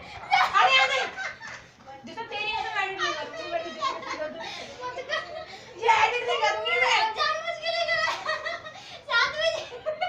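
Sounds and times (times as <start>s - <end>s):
women and girls talking: 0.0s - 10.0s.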